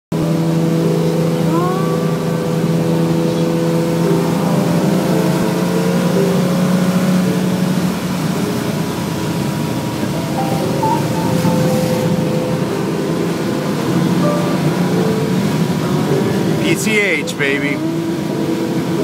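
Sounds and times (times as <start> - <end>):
car engine cruising: 0.1 - 19.0
road noise: 0.1 - 19.0.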